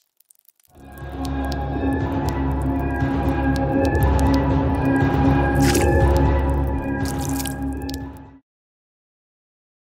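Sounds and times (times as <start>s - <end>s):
wet dripping and splattering: 0.0s - 4.4s, 5.6s - 8.2s
music with sustained notes: 0.8s - 8.4s.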